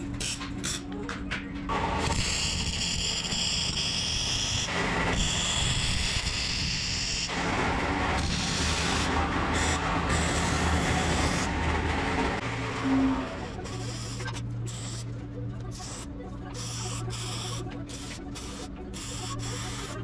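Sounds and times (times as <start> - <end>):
steady background noise: 0.0 - 20.0.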